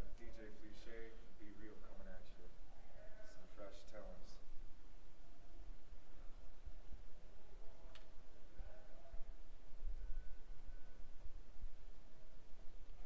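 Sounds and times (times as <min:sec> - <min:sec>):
faint click: 0:07.9 - 0:08.1.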